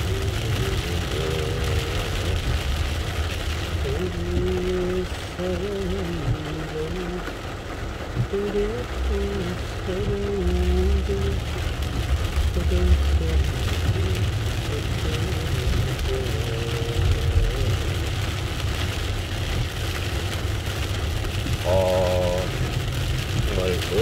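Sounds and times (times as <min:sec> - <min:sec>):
engine rumble: 0:00.0 - 0:24.0
heavy rain on car roof: 0:00.0 - 0:24.0
tyres on wet road: 0:00.0 - 0:24.0.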